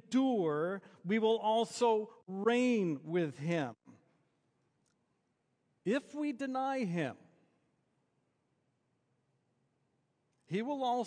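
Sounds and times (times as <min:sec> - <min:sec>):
man speaking: 0:00.0 - 0:04.0, 0:05.8 - 0:07.4, 0:10.4 - 0:11.0.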